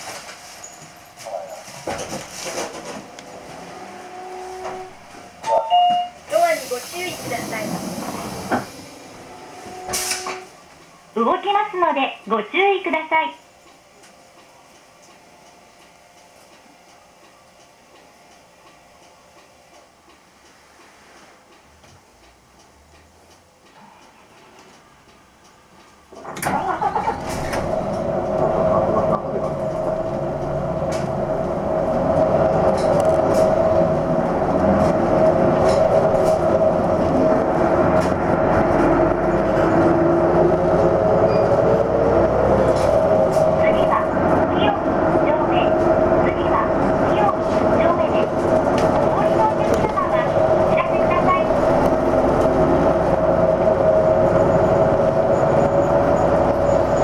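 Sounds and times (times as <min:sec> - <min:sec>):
bus diesel engine accelerating: 0:01.2 - 0:05.5, 0:06.2 - 0:11.2, 0:26.0 - 0:57.0
steady whine: 0:26.4 - 0:57.0.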